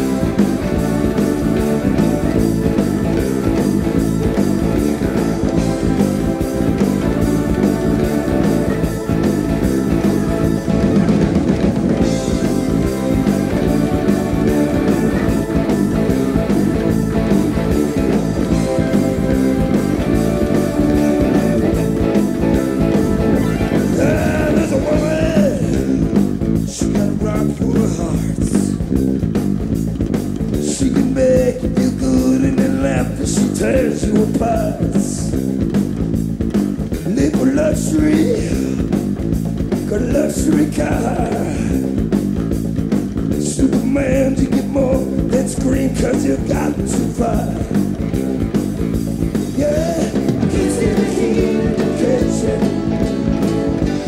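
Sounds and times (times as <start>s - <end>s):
bass guitar: 0.0s - 54.0s
drum kit: 0.0s - 54.0s
electric guitar: 0.0s - 54.0s
person singing: 17.2s - 28.8s, 30.6s - 35.3s, 37.1s - 38.9s, 39.9s - 41.9s, 43.4s - 47.9s, 49.5s - 54.0s.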